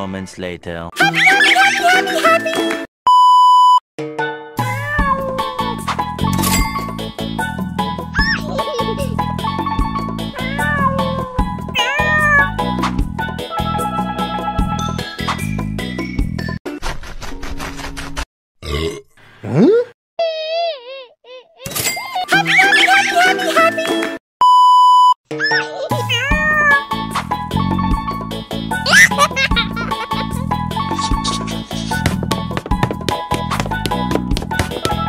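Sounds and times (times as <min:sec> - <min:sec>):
cat meowing: 0:10.4 - 0:12.6
loud burp rising in pitch: 0:18.6 - 0:19.6.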